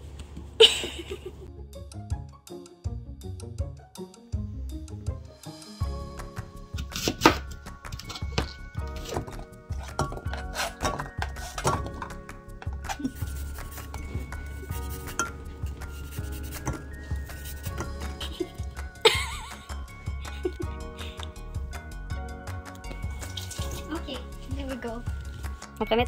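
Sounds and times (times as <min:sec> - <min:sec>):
background music: 0:00.6 - 0:26.0.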